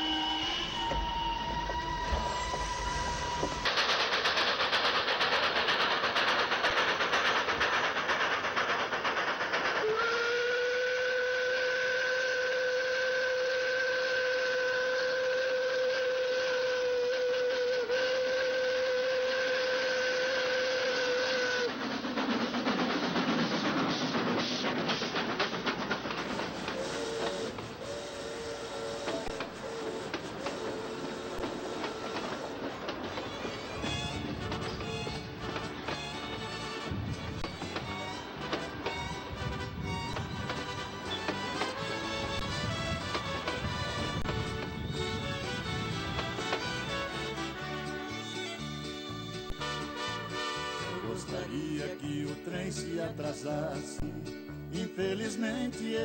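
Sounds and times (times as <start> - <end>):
steam locomotive whistle: 0.0 - 4.3, 9.6 - 21.8, 26.3 - 51.4
train rumbling and clicking: 0.0 - 12.8, 15.5 - 56.0
steam escaping: 0.0 - 51.4.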